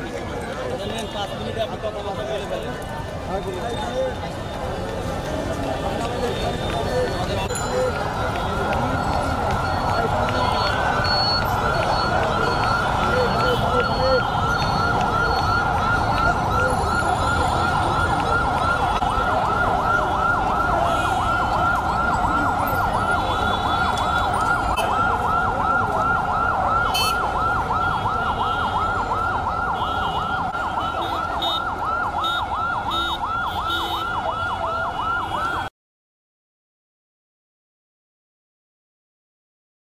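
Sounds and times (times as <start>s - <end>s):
street noise: 0.0s - 35.7s
siren yelping: 7.9s - 35.7s.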